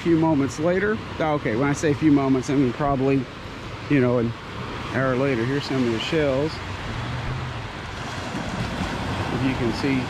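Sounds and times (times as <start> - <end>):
gentle surf on beach: 0.0 - 10.0
wind rumbling on microphone: 6.1 - 10.0.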